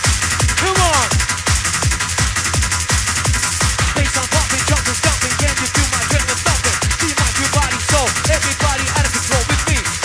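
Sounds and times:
electronic rave music: 0.0 - 10.0
pounding kick drums: 0.0 - 10.0
stabbing synth riff: 0.0 - 10.0.

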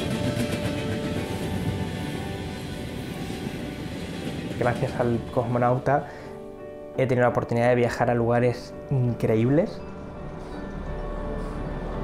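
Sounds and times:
moving train rumble: 0.0 - 6.9, 9.7 - 12.0
background music: 0.0 - 12.0.

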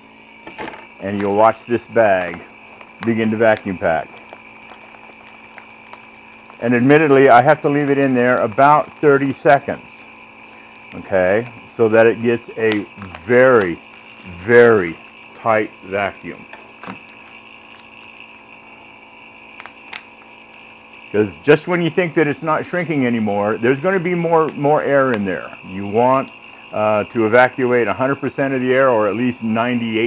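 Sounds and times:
vacuum pump humming: 0.0 - 30.0
foil bag crinkling: 1.0 - 9.9, 10.5 - 15.4, 16.1 - 18.3.

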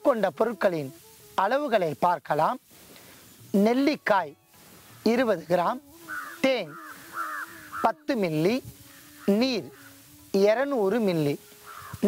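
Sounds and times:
person speaking drawn-out syllables: 5.1 - 11.4.

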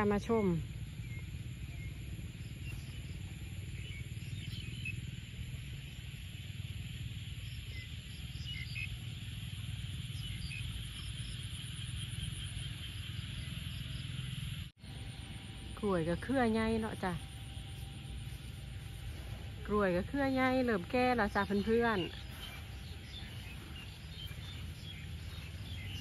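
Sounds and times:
crickets trilling: 0.0 - 26.0
fast pulsing insect trill: 0.0 - 26.0
steady low rumble: 0.0 - 26.0.

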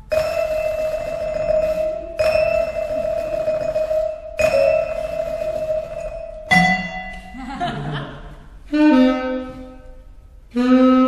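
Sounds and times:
vibraphone high note: 0.0 - 7.4.

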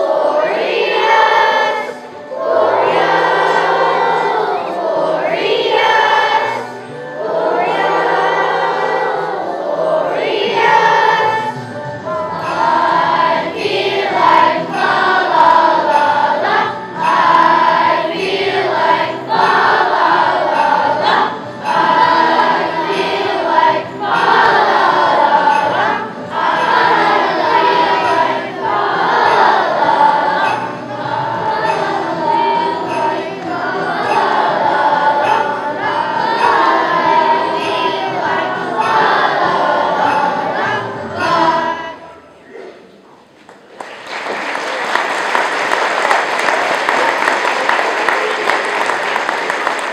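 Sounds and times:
children's choir singing: 0.0 - 43.0, 43.6 - 49.9.

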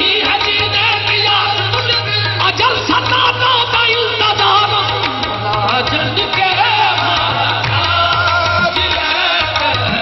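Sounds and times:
harmoniums playing: 0.0 - 10.0
men singing: 0.0 - 10.0.

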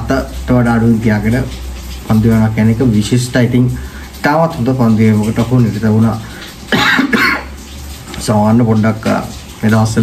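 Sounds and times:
man coughing: 6.7 - 7.5.

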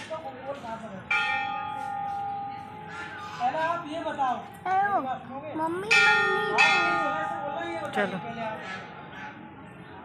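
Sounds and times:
temple bell ringing: 1.1 - 2.8, 5.8 - 8.3.

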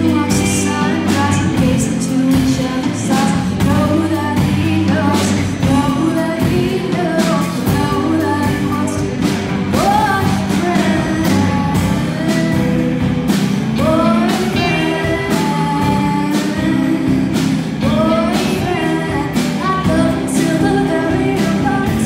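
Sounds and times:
live rock band playing: 0.0 - 22.0
woman singing: 0.0 - 22.0.

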